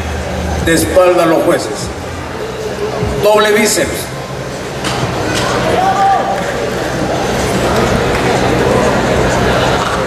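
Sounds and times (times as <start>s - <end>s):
crowd noise in a hall: 0.0s - 10.0s.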